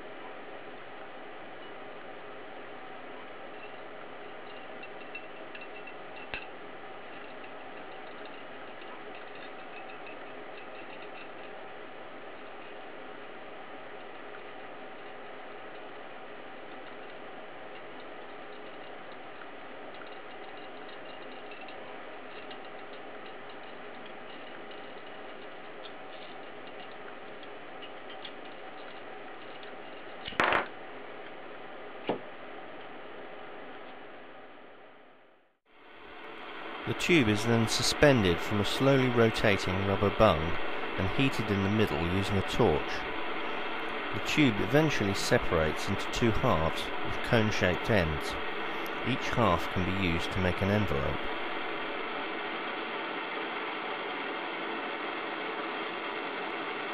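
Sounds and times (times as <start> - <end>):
steady background hiss: 35.8 - 56.9.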